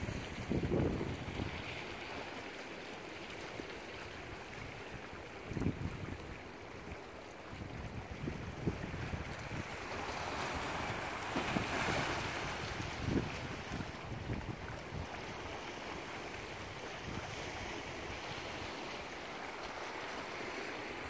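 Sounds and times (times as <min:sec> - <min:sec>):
wind buffeting microphone: 0:00.0 - 0:01.8, 0:07.6 - 0:15.4
waves lapping against rocks: 0:00.0 - 0:21.0.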